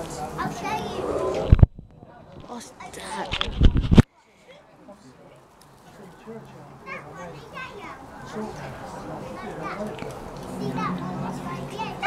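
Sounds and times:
children talking and calling out: 0.0s - 1.6s, 6.6s - 12.0s.

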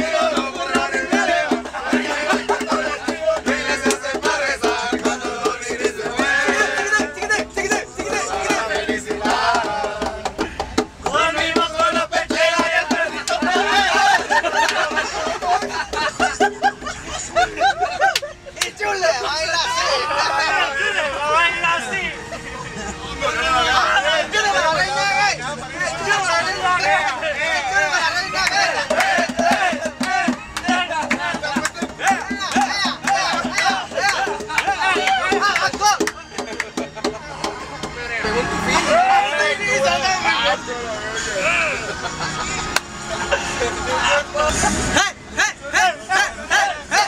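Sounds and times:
men laughing: 0.0s - 10.8s, 11.7s - 24.0s, 27.5s - 37.5s, 41.2s - 47.0s
men talking and calling: 0.0s - 47.0s
van engine and road noise: 0.0s - 47.0s.

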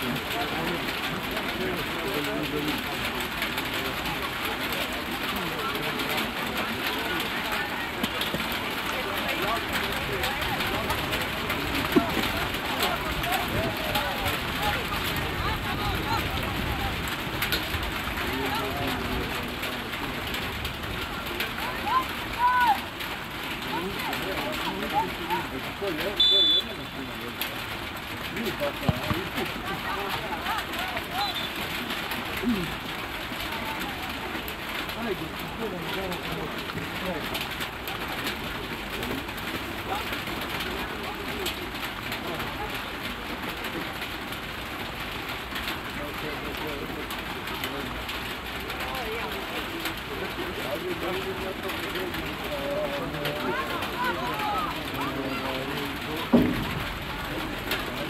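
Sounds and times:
people shouting: 21.6s - 22.9s, 53.4s - 55.4s
referee's whistle blast: 26.2s - 27.0s.

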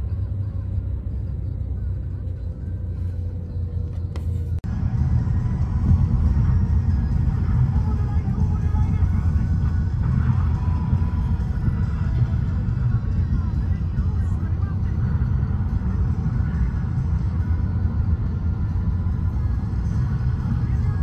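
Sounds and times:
road and engine rumble in vehicle: 0.0s - 21.0s.

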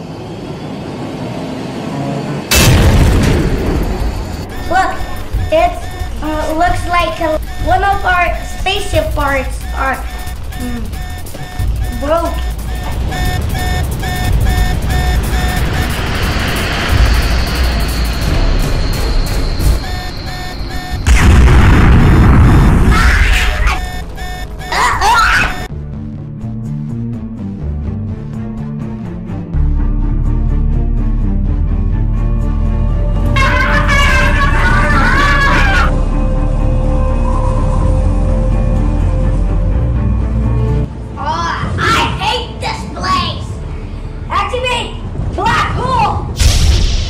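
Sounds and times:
loud explosion: 2.5s - 6.0s, 10.2s - 24.2s, 46.4s - 47.0s
music with repeating tone: 4.4s - 21.2s, 23.8s - 24.9s.

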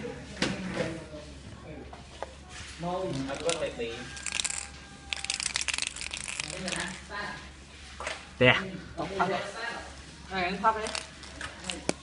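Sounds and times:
crinkling crunching handling noise: 3.0s - 7.0s, 10.7s - 12.0s.

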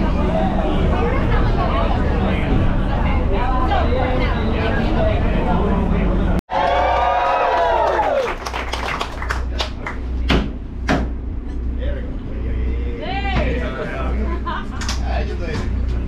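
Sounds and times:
steady low hum: 0.0s - 6.4s, 7.6s - 16.0s.

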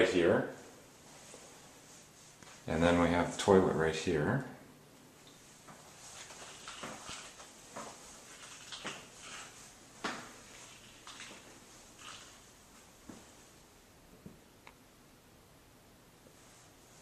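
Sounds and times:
footsteps on tiled floor: 5.6s - 13.4s.

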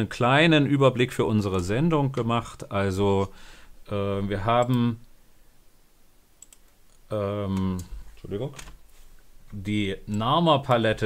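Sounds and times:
faint computer clicking: 4.5s - 5.2s, 6.4s - 11.0s.

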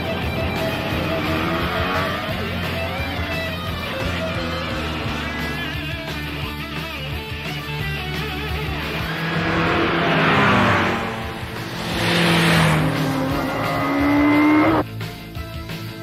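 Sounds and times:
engine revving: 0.0s - 14.9s
motorcycles passing: 0.0s - 14.9s
rock music: 0.0s - 16.0s.

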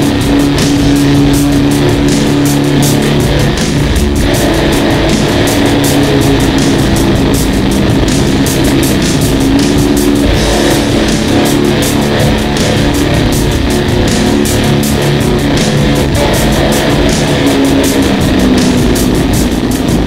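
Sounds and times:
distorted electric guitar: 0.0s - 20.0s
drums with fast cymbal strikes: 0.0s - 20.0s.

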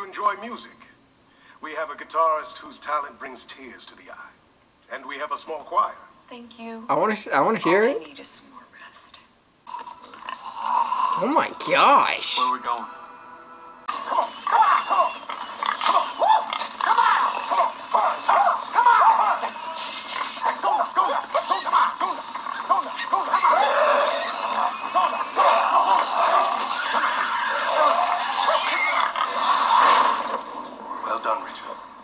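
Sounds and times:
pigs grunting and squealing: 9.7s - 11.6s, 13.9s - 30.4s
background music: 11.1s - 14.5s.

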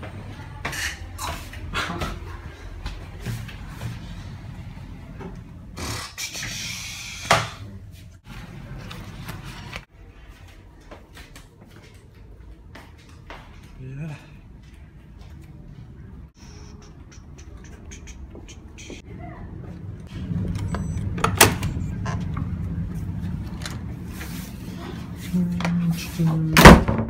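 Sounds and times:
lift car hum: 16.3s - 26.6s.

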